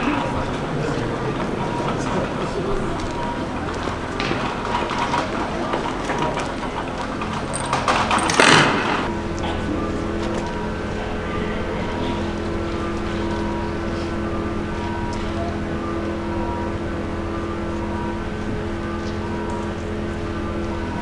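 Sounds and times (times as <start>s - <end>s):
engine idling hum: 0.0s - 21.0s.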